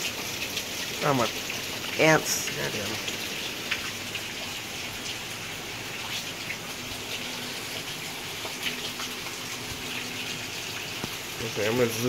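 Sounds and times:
heavy rain pouring: 0.0 - 12.0
raindrops ticking close by: 0.0 - 12.0.

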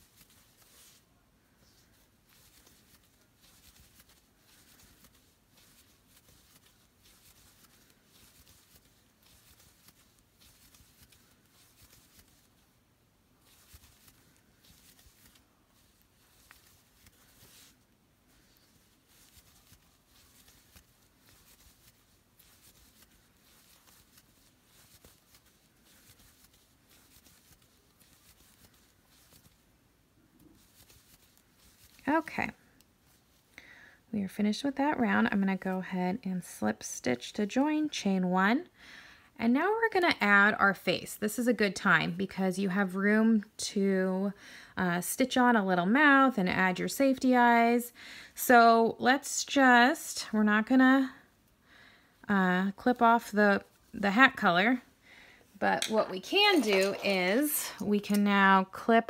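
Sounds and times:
soft rustling of yarn: 0.0 - 59.0.

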